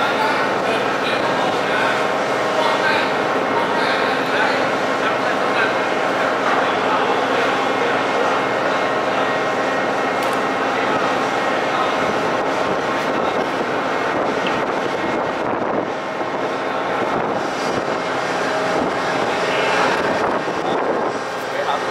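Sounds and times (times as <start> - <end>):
heavy machinery drone: 0.0 - 21.9.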